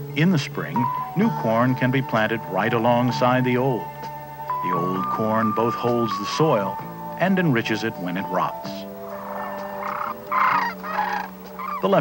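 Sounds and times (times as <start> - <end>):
steady held background tones: 0.0 - 12.0
cranes honking calls: 8.4 - 12.0.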